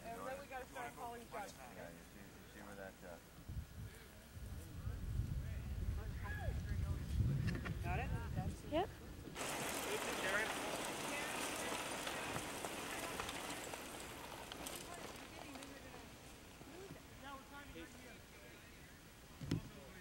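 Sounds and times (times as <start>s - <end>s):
bike tyres crunching on gravel: 9.4s - 17.9s.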